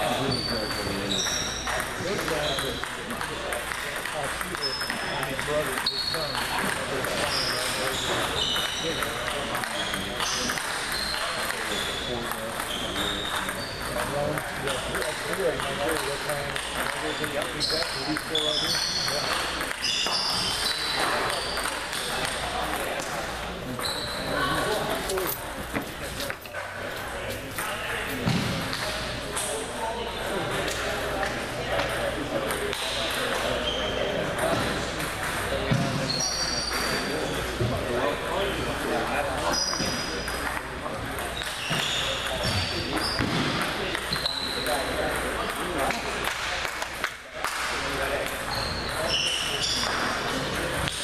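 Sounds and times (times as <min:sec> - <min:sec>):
murmur of voices in a hall: 0:00.0 - 0:51.0
table tennis balls clicking: 0:00.7 - 0:23.2, 0:34.4 - 0:35.5.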